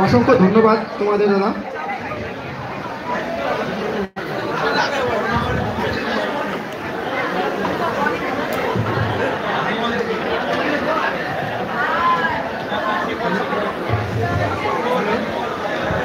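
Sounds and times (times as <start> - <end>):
babble of overlapping voices: 0.0 - 16.0.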